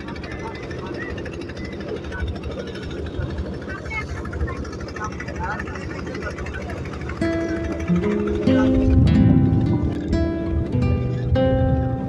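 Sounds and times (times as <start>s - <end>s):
boat engine thudding: 0.0s - 12.0s
wind: 0.0s - 12.0s.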